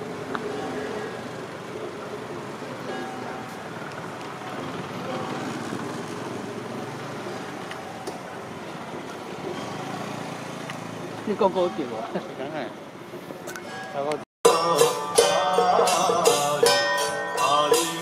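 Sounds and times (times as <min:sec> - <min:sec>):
traffic noise: 0:00.0 - 0:18.0.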